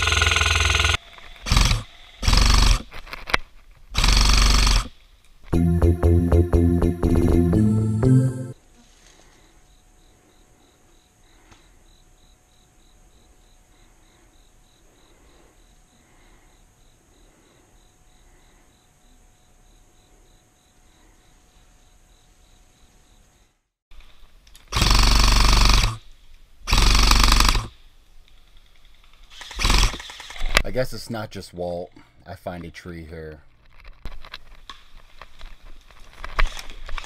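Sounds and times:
airsoft rifle full-auto bursts: 0.0 - 2.9, 4.0 - 4.9, 24.7 - 26.0, 26.7 - 27.7, 29.3 - 30.6.

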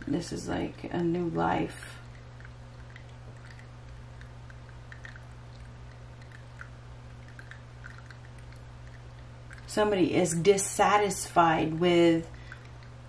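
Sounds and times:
low hum: 0.0 - 13.0.

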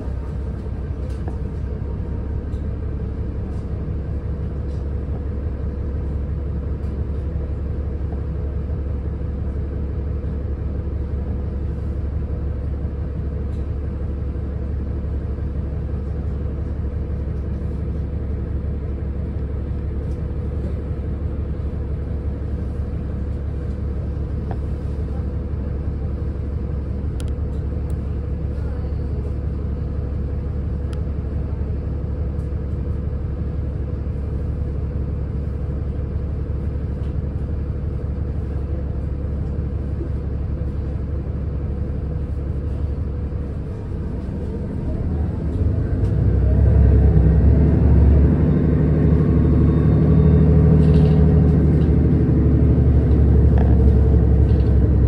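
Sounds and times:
bus engine idling: 0.0 - 55.0.

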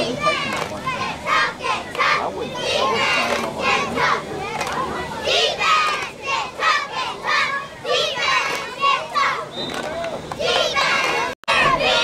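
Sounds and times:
crowd and players shouting: 0.0 - 12.0.

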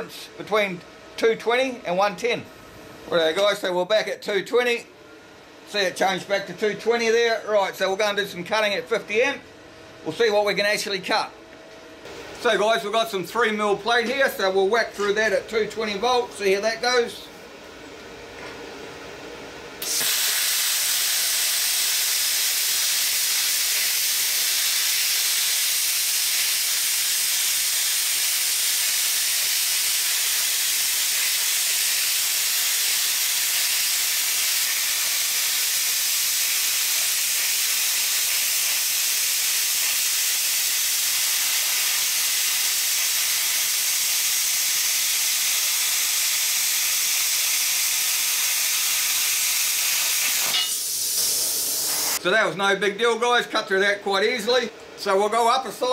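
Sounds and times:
plasma cutter hissing: 19.8 - 52.2.

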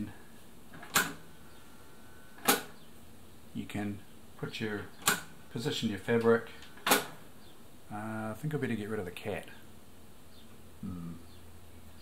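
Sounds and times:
faint thin whine: 0.0 - 9.7.

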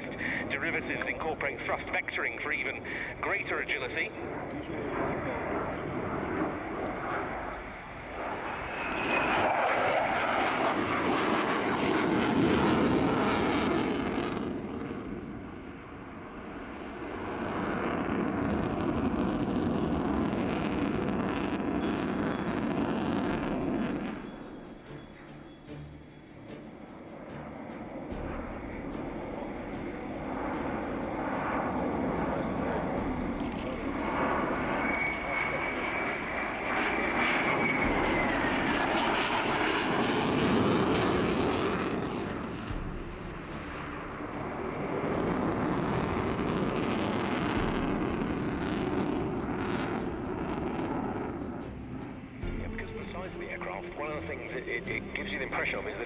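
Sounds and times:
high jet whine: 0.0 - 56.0
jet roar: 0.0 - 56.0.

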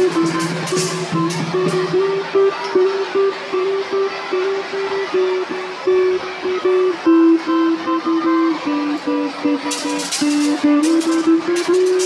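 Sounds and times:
electric guitar melody: 0.0 - 12.0.

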